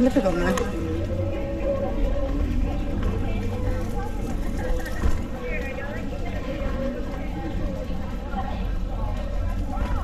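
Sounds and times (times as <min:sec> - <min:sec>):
faint music: 0:00.0 - 0:10.0
low street rumble: 0:00.0 - 0:10.0
voices: 0:00.0 - 0:10.0.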